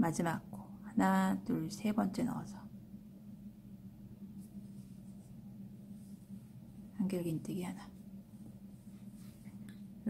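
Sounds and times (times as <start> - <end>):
low hum: 0.0 - 10.0
crochet hook rustling in yarn: 4.4 - 6.5, 8.4 - 9.7.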